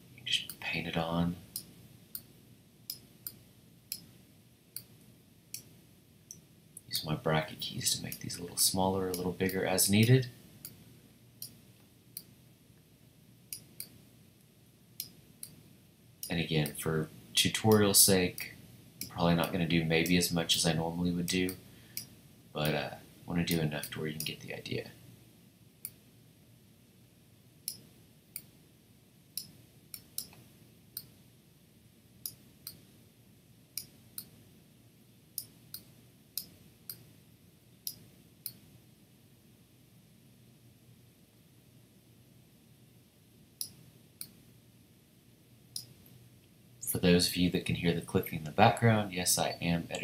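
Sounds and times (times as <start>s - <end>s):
faint room noise: 0.0s - 50.0s
computer mouse clicks: 27.7s - 28.5s, 29.4s - 30.4s.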